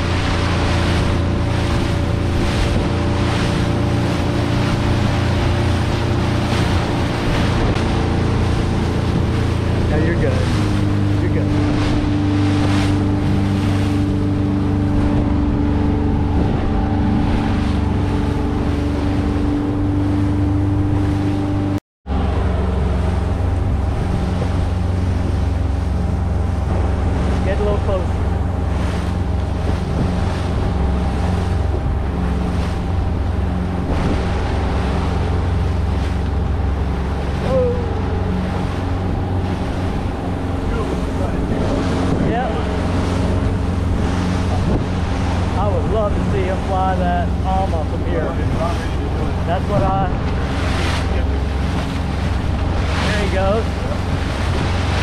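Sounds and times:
motorboat engine running: 0:00.0 - 0:55.0
water rushing along hull: 0:00.0 - 0:55.0.

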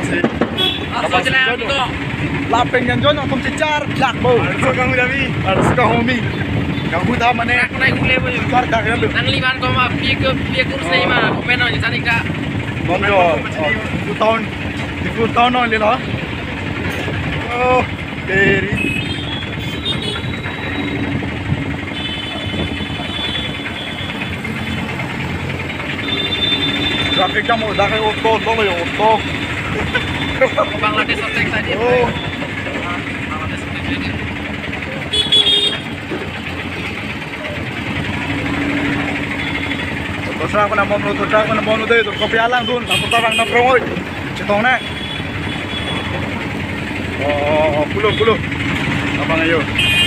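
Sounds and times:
busy street traffic: 0:00.0 - 0:50.0
truck engine and road noise: 0:00.0 - 0:50.0
voices: 0:00.0 - 0:50.0.

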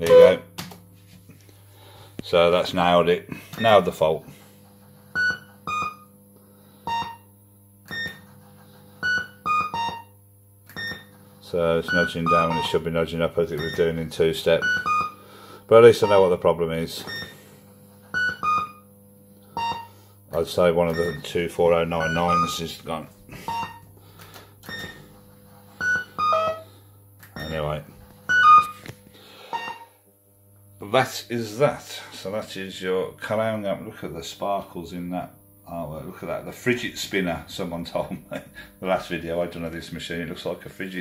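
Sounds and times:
fruit machine electronic beeps: 0:00.0 - 0:00.6, 0:03.6 - 0:03.9, 0:05.1 - 0:06.1, 0:06.8 - 0:07.3, 0:07.9 - 0:08.3, 0:09.0 - 0:11.2, 0:11.8 - 0:15.2, 0:15.9 - 0:16.4, 0:17.0 - 0:17.4, 0:18.1 - 0:18.9, 0:19.5 - 0:20.0, 0:20.9 - 0:22.8, 0:23.4 - 0:23.9, 0:24.6 - 0:25.2, 0:25.8 - 0:26.7, 0:27.3 - 0:28.8, 0:29.5 - 0:30.0
steady low hum: 0:00.0 - 0:41.0
electronic beeps and chirps: 0:05.2 - 0:06.1, 0:09.0 - 0:10.1, 0:11.8 - 0:12.8, 0:14.6 - 0:15.2, 0:18.1 - 0:18.8, 0:22.0 - 0:22.6, 0:23.4 - 0:23.8, 0:25.8 - 0:26.7, 0:28.3 - 0:28.7, 0:29.5 - 0:29.9.

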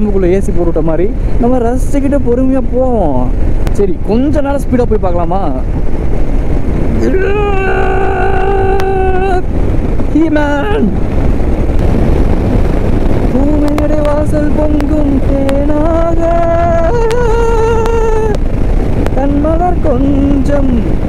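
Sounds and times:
motorcycle wind and road noise: 0:00.0 - 0:21.0
man singing long notes: 0:06.9 - 0:09.5, 0:13.3 - 0:18.4, 0:19.2 - 0:20.9.

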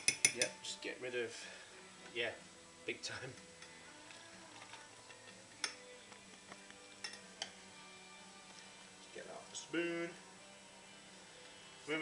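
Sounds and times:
metal whisk clinking on saucepan: 0:00.0 - 0:00.6
faint stirring: 0:03.2 - 0:07.6.

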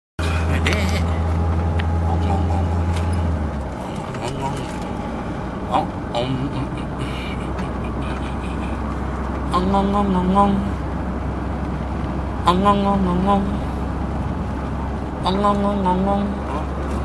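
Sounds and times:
car engine drone: 0:00.2 - 0:17.0
road noise inside car: 0:00.2 - 0:17.0.

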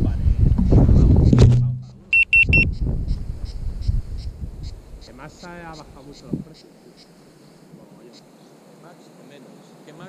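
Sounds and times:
rumbling handling noise: 0:00.4 - 0:02.2
short high electronic beeps: 0:02.1 - 0:02.7.

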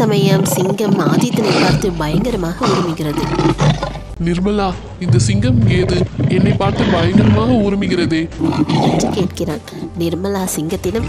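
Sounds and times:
woman's voice: 0:00.0 - 0:03.5, 0:08.8 - 0:11.0
lion roaring: 0:00.0 - 0:04.2, 0:04.9 - 0:10.0.

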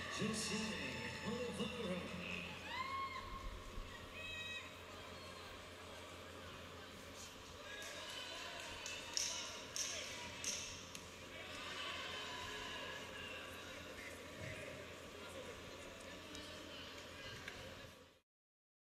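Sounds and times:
voices in arena: 0:00.0 - 0:18.2.

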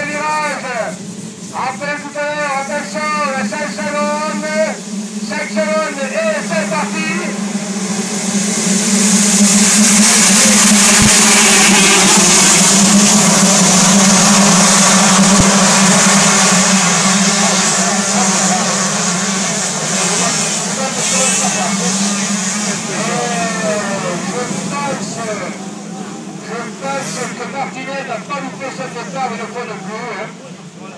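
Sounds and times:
motocross bikes revving: 0:00.0 - 0:30.0.

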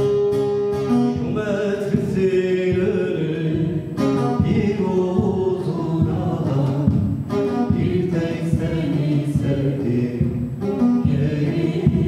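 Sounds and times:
man singing folk song: 0:00.7 - 0:12.0.

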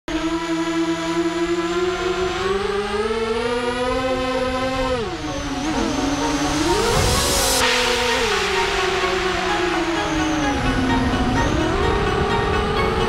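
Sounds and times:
quadcopter motors whining: 0:00.1 - 0:13.0.

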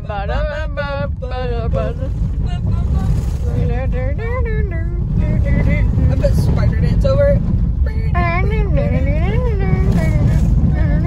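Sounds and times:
car driving on dirt road: 0:00.0 - 0:11.0.

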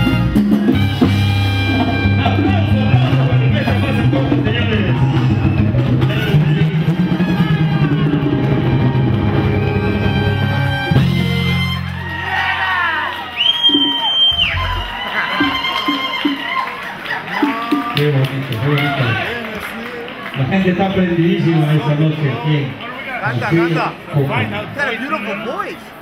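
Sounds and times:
live salsa band: 0:00.0 - 0:19.2
crowd whooping: 0:00.0 - 0:26.0
shrill whistle: 0:13.2 - 0:16.7
voices: 0:14.4 - 0:26.0.

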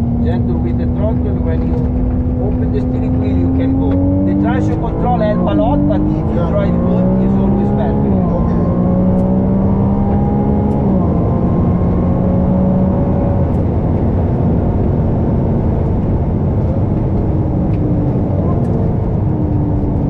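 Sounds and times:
car engine running: 0:00.0 - 0:20.0
wind and road rush: 0:00.0 - 0:20.0.

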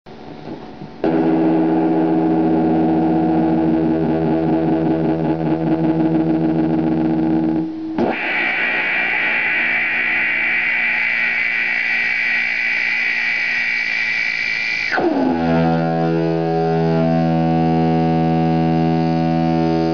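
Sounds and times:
harsh distorted guitar drone: 0:00.4 - 0:19.9
high piercing tone over noise: 0:06.6 - 0:18.4.

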